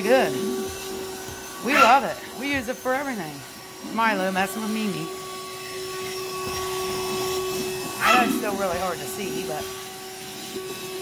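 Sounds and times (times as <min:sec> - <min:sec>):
handheld vacuum cleaner running: 0:00.0 - 0:11.0.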